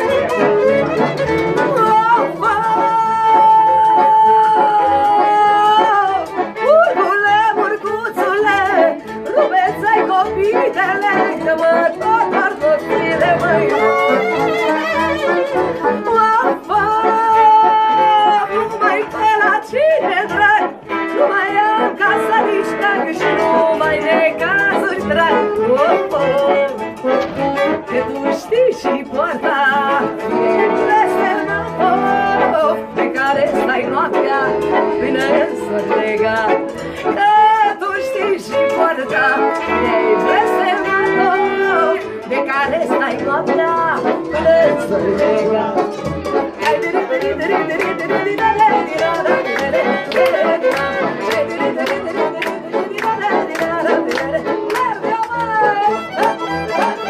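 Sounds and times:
accordion and violin folk dance tune: 0.0 - 57.0
pulsing accordion bass: 0.0 - 57.0.

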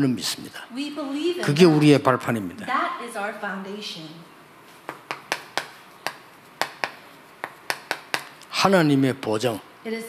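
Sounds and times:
chalk tapping on chalkboard: 4.8 - 8.5.

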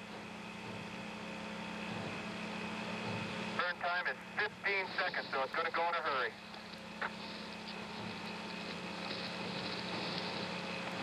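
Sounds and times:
radio channel hiss and hum: 0.0 - 11.0.

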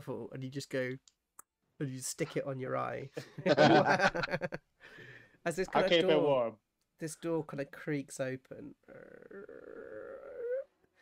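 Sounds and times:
man imitating creaking door: 8.9 - 10.8.

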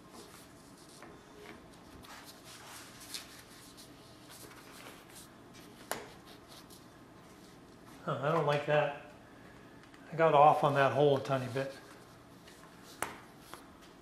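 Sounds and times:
rustling and scraping of fabric: 0.0 - 8.0.

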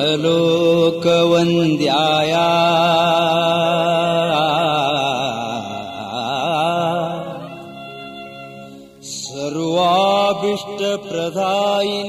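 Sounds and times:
person chanting in singing voice: 0.0 - 12.0.

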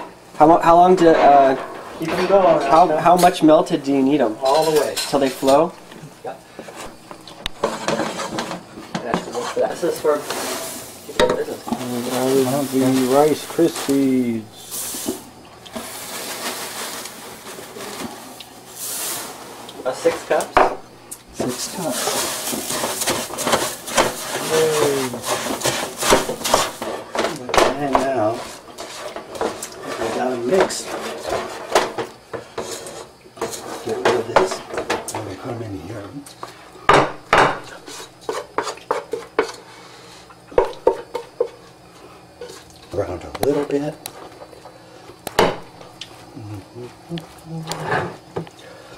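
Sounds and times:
dry cereal pouring into a pan: 10.0 - 20.1, 21.4 - 26.8
metal utensil scraping a pot: 21.4 - 27.2, 28.2 - 31.9.

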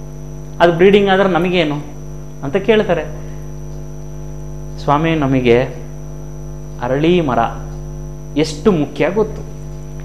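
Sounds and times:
electrical mains hum: 0.0 - 10.0
faint high whine: 0.0 - 10.0
man speaking: 0.6 - 3.3, 4.8 - 5.9, 6.8 - 7.7, 8.4 - 9.5.

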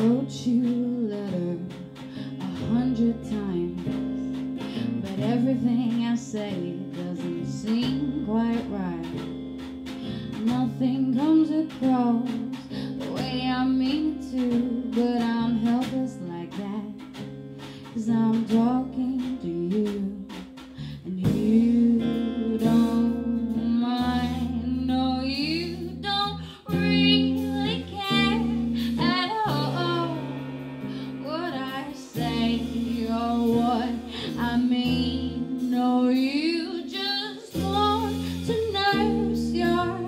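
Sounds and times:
drums: 0.0 - 40.0
electric bass guitar: 0.0 - 40.0
woman singing: 0.0 - 40.0.

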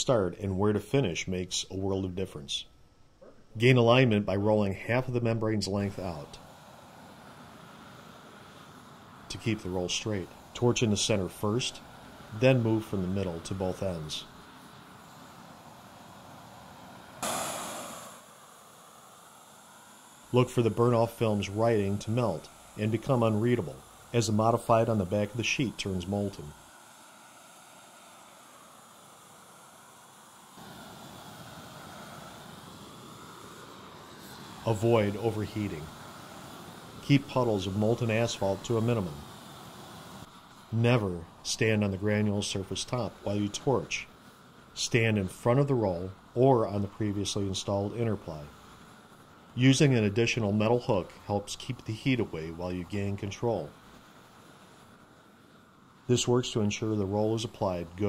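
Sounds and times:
faint steady hiss: 0.0 - 58.0
roofing torch burning: 0.0 - 58.0.

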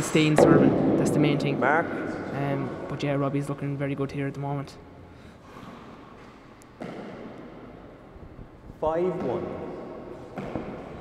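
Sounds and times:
ball striking court with echo: 0.0 - 3.8, 5.7 - 8.0, 9.0 - 11.0.

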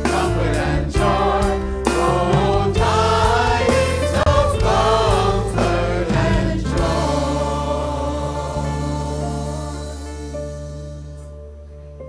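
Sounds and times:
mixed choir singing a carol: 0.0 - 11.2
choir accompaniment: 0.0 - 11.5.

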